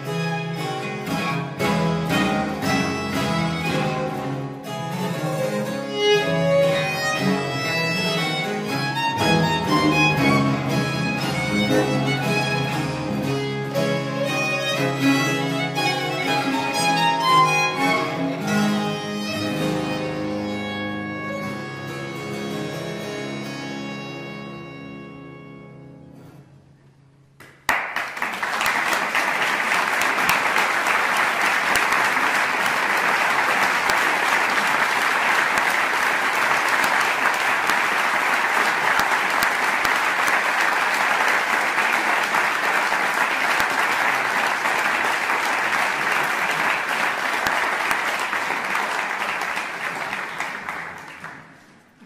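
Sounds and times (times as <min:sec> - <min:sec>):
audience applauding: 0:05.1 - 0:20.7, 0:27.4 - 0:52.0.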